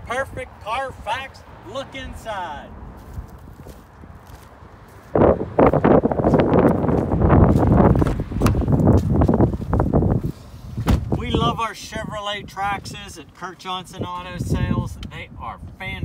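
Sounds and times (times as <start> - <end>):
footsteps crunching on gravel: 2.8 - 9.9.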